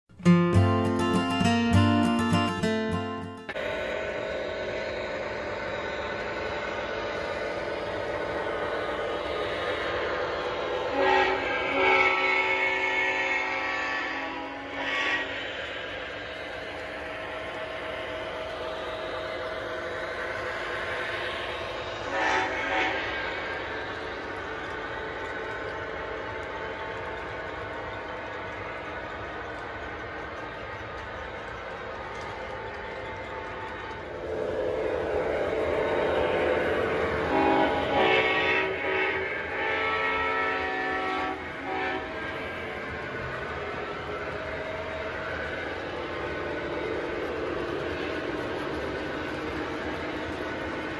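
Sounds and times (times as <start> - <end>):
guitar music: 0.1 - 3.6
model trains running on track: 0.1 - 50.9.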